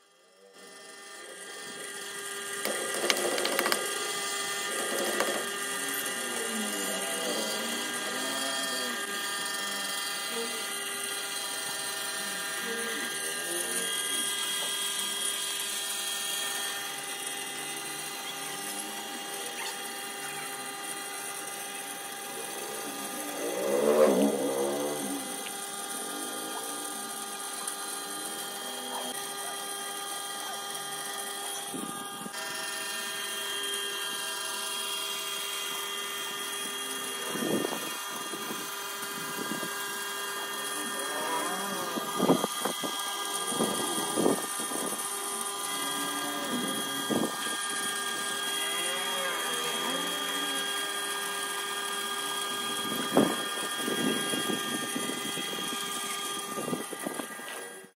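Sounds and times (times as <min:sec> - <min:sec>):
potter's wheel motor whine: 0:00.0 - 0:58.0.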